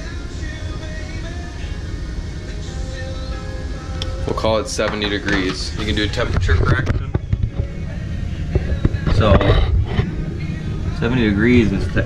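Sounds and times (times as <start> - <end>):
farm machinery rumbling: 4.2 - 12.0.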